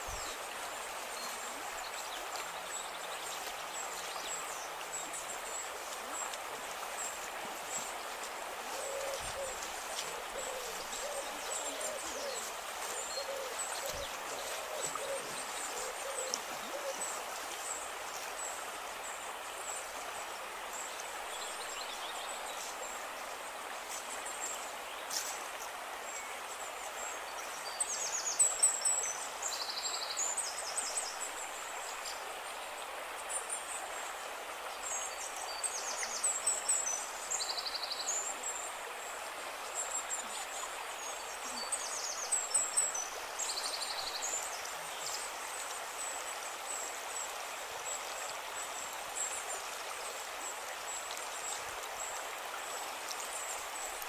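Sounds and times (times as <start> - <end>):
forest stream running: 0.0 - 54.0.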